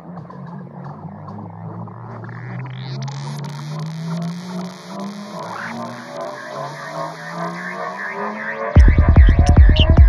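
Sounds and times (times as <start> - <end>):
low synthesizer drone: 0.0 - 10.0.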